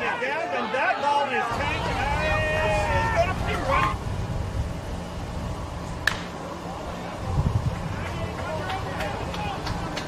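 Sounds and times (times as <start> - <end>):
low outdoor rumble: 1.4 - 10.0
bat cracking a baseball: 6.0 - 6.4.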